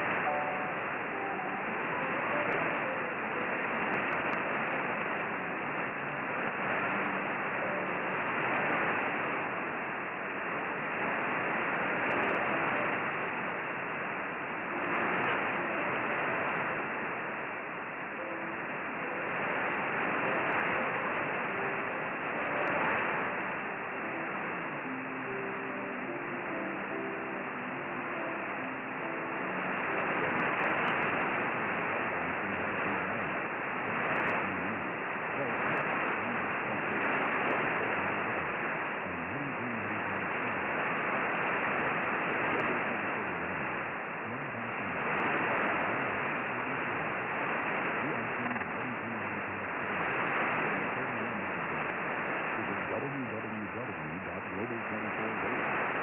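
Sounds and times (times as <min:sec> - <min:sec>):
faint radio programme audio: 0:00.0 - 0:56.0
radio static hiss: 0:00.0 - 0:56.0.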